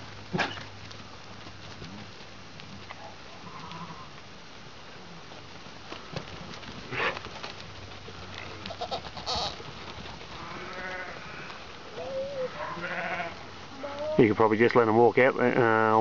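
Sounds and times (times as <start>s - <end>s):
sheep bleating: 8.7s - 9.6s, 10.4s - 14.2s.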